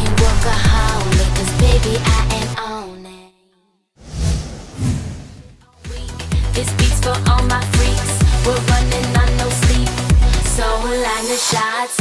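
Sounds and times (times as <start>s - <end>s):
whooshing swells: 4.0s - 5.6s.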